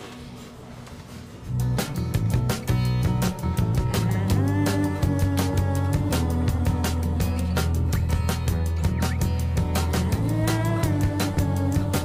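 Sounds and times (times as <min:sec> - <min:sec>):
soft underscore music: 0:01.3 - 0:12.0
music with beat and heavy bass: 0:01.6 - 0:12.0.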